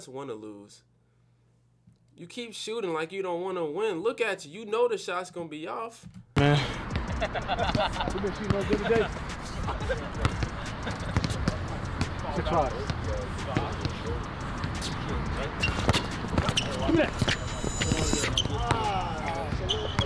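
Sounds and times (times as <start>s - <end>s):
people talking: 2.2s - 6.8s, 7.6s - 20.0s
basketball bouncing on court: 6.9s - 20.0s.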